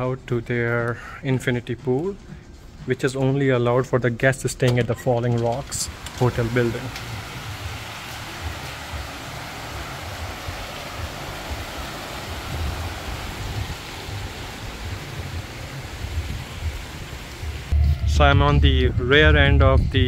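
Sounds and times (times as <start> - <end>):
fountain water splashing: 5.8 - 17.8
low rumble: 5.9 - 20.0.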